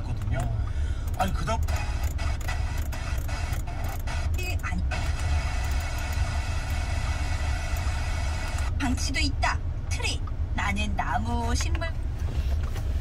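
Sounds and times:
constant low hum: 0.0 - 13.0
radio broadcast being tuned: 1.4 - 8.8.

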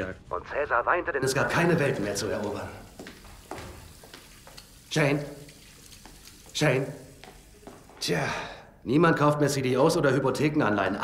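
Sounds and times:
low hiss: 1.1 - 11.0
footsteps on tiled floor: 1.3 - 8.4.

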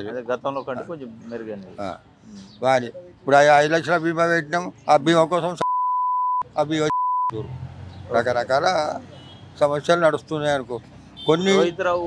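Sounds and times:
high censor beep: 5.6 - 7.4
man speaking: 8.1 - 12.0.

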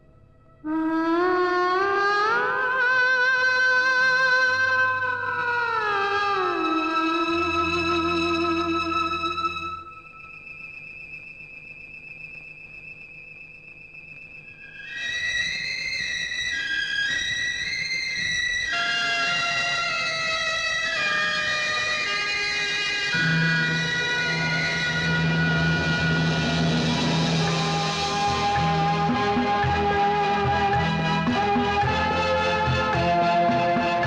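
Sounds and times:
high wavering held note: 0.0 - 34.0
instrumental film music melody: 2.4 - 34.0
steady low note: 23.2 - 34.0.

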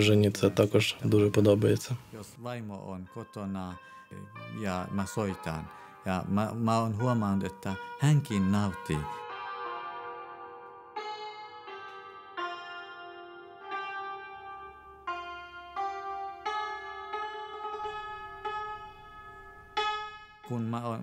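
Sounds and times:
hammered dulcimer melody: 0.0 - 21.0.

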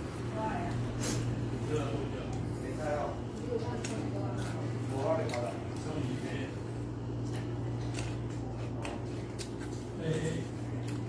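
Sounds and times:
chewing mouth sounds: 3.2 - 11.0.

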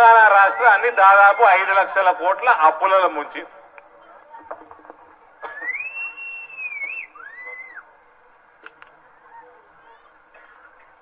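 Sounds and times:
high whistle: 5.6 - 7.8.

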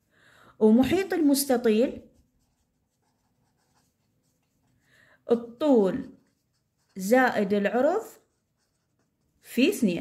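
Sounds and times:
marker pen scratching on paper: 0.8 - 10.0.

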